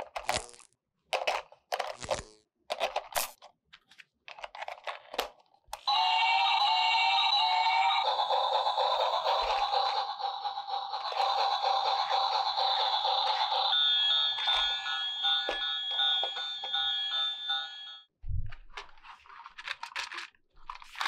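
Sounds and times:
beeping jingle: 0:05.9 - 0:08.6, 0:13.0 - 0:18.1
toy train electronic tune: 0:05.9 - 0:18.1.

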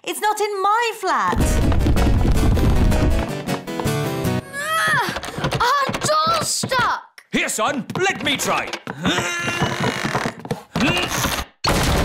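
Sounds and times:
heavy crash of door falling: 0:01.4 - 0:03.4, 0:11.6 - 0:12.0
door rattling: 0:08.0 - 0:12.0.

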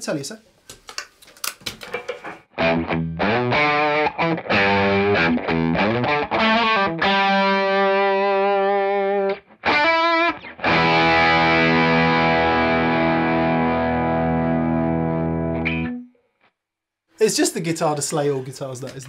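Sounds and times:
distorted electric guitar chords: 0:02.5 - 0:16.1.

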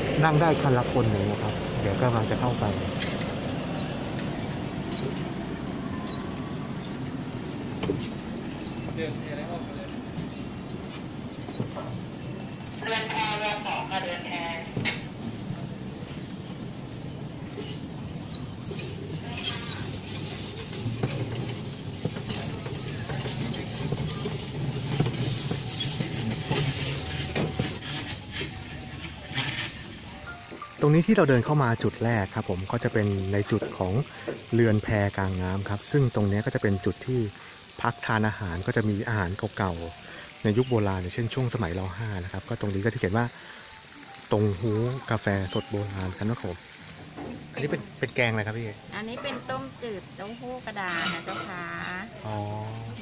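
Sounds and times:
rickshaw wheels rattling over concrete: 0:00.0 - 0:53.0.

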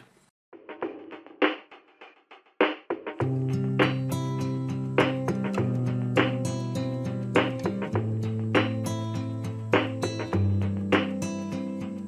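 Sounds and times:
drum hits in background music: 0:00.6 - 0:04.2, 0:05.0 - 0:06.6, 0:07.4 - 0:09.0, 0:09.8 - 0:11.3.

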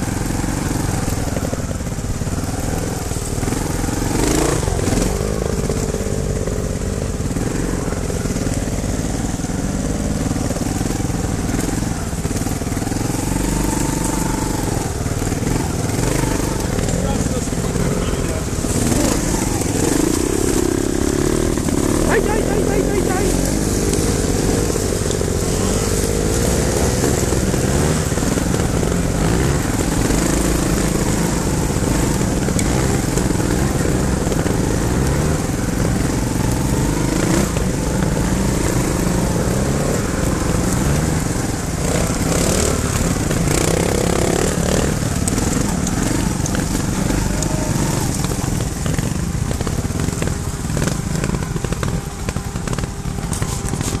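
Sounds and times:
motorcycle engines revving: 0:00.0 - 0:54.0.

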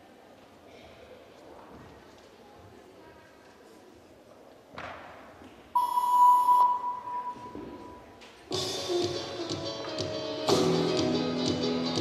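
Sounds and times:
electronic beep tone: 0:05.8 - 0:08.0.

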